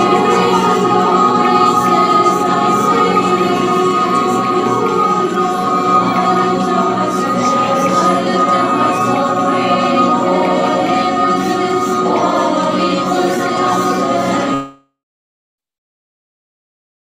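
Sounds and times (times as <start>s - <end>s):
women singing a hymn in chorus: 0.0s - 14.6s.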